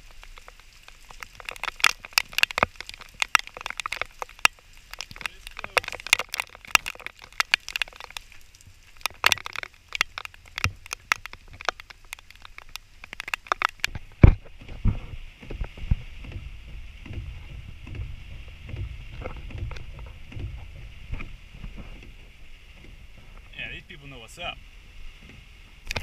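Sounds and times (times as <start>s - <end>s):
car cabin rumble in rain: 0.0s - 26.0s
heavy rain splattering: 0.0s - 26.0s.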